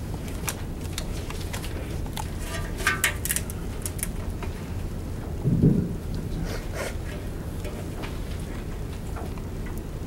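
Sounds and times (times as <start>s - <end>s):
low room hum: 0.0s - 10.0s
dull low thump: 5.4s - 6.1s.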